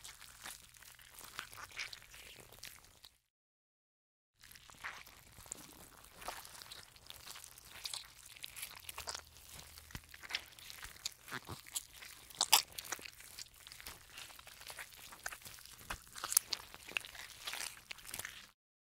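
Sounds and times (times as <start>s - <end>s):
slime squished by hand: 4.4s - 18.5s.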